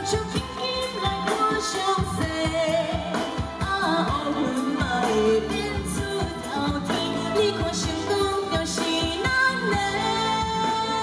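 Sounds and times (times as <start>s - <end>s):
band playing: 0.0s - 11.0s
woman singing into a microphone: 0.0s - 11.0s.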